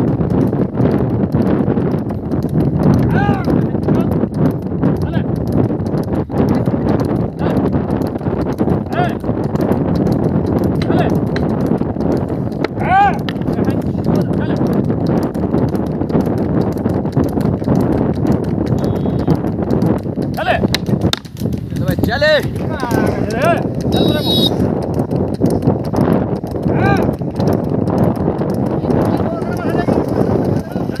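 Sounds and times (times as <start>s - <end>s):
hoofbeats of running bullocks: 0.0s - 31.0s
hooves and cart clattering: 0.0s - 31.0s
person shouting: 3.1s - 3.5s, 12.8s - 13.2s, 26.7s - 27.1s
men shouting: 3.1s - 4.1s, 7.4s - 7.7s, 8.9s - 9.2s, 10.8s - 11.2s, 12.7s - 14.6s, 20.4s - 20.7s, 22.0s - 24.6s, 26.7s - 27.2s, 28.8s - 31.0s.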